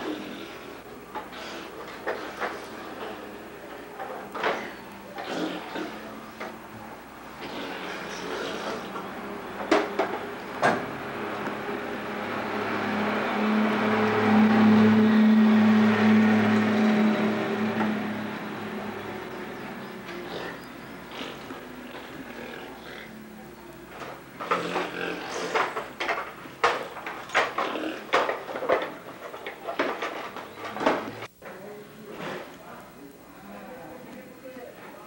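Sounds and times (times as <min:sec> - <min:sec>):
low motor hum: 0:08.9 - 0:23.6.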